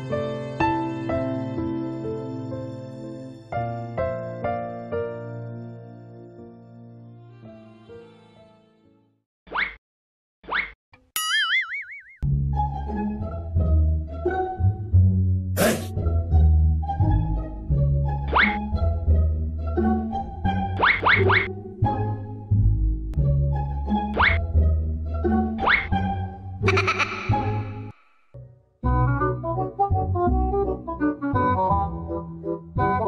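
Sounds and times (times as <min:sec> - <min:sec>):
cartoon wobbling boing: 0:11.2 - 0:12.2, 0:26.6 - 0:27.9
playful comedy music: 0:15.6 - 0:22.3, 0:23.2 - 0:28.0, 0:28.8 - 0:33.0.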